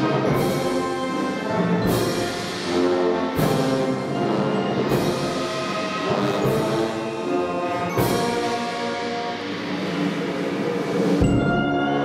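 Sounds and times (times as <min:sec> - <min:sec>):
brass band playing slow march: 0:00.0 - 0:12.0.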